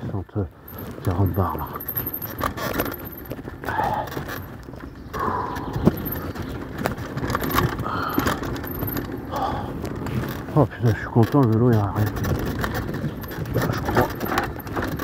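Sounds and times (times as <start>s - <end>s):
bike clattering over roots: 0.0s - 15.0s.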